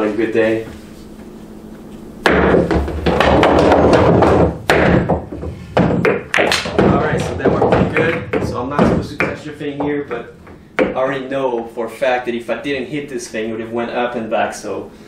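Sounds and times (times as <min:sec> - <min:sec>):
pool balls knocking and clattering: 0:02.2 - 0:11.8.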